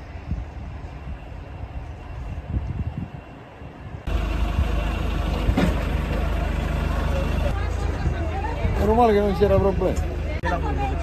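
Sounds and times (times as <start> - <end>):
low engine hum: 3.9 - 11.0
people talking: 6.1 - 11.0.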